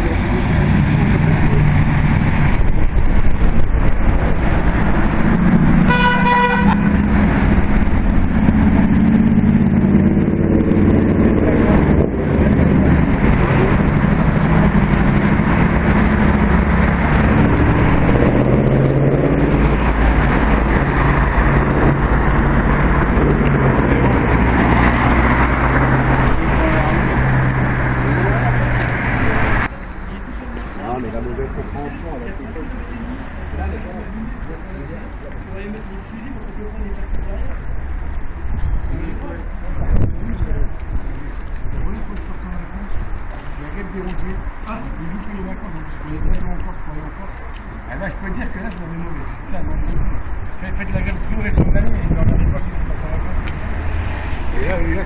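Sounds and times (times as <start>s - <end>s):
road traffic passing: 0.0s - 55.0s
car horn: 5.8s - 7.0s.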